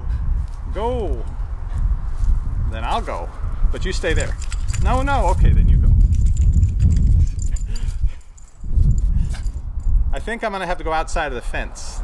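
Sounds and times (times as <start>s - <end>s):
low rumbling microphone noise: 0.0s - 10.4s.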